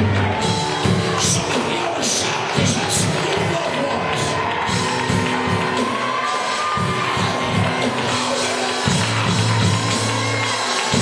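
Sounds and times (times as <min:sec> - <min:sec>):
drum kit steady beat: 0:00.0 - 0:11.0
live praise band playing: 0:00.0 - 0:11.0
people shouting and cheering: 0:00.0 - 0:11.0.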